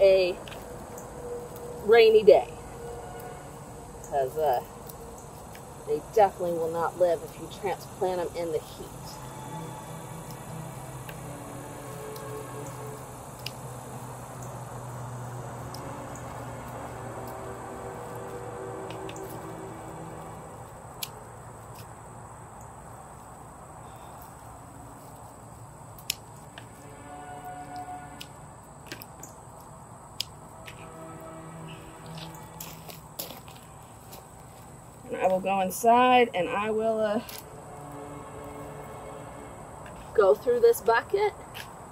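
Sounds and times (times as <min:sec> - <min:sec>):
soft background music: 0:06.1 - 0:20.8, 0:26.6 - 0:28.4, 0:30.5 - 0:33.5, 0:35.1 - 0:41.3.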